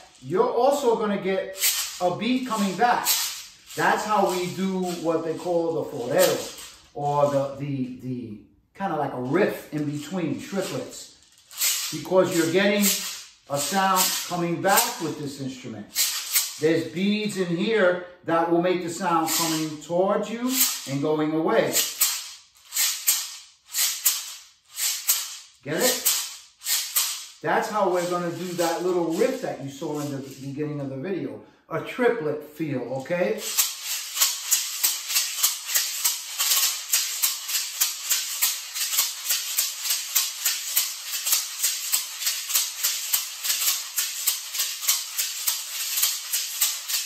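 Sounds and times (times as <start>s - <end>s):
maraca rattling: 0.0s - 7.6s, 9.2s - 17.8s, 18.8s - 30.6s, 32.8s - 47.0s.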